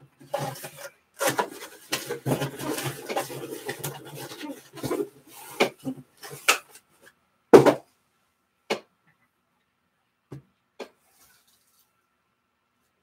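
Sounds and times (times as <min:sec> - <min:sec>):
cardboard rustling and scraping: 0:00.2 - 0:06.8.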